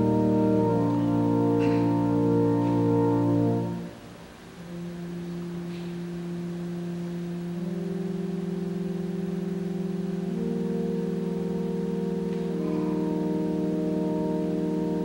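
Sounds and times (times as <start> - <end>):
organ sustained chord: 0.0 - 15.0.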